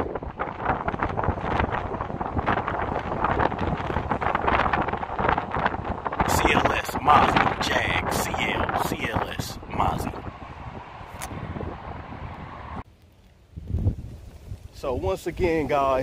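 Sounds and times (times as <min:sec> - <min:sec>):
wind buffeting microphone: 0:00.0 - 0:16.0
indistinct voices: 0:06.2 - 0:11.3.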